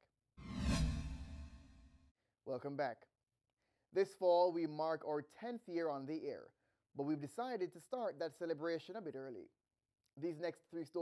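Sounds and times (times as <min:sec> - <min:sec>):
whoosh transition effect: 0:00.4 - 0:02.0.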